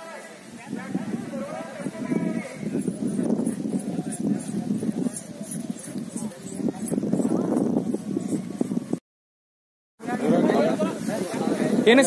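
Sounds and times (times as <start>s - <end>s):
hooves pounding on soft soil: 0.8s - 9.0s.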